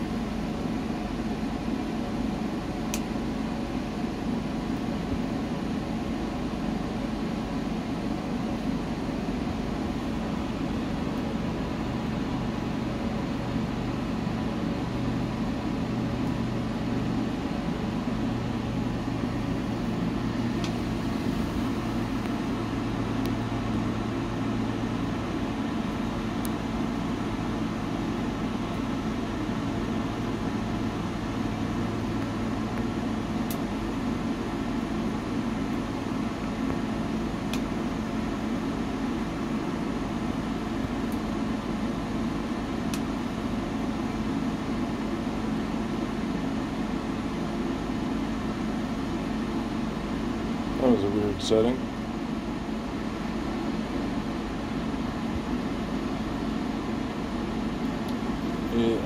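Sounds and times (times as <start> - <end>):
fan-like mechanical hum: 0.0 - 59.0
logs crackling in stove: 8.2 - 50.8, 52.0 - 58.7.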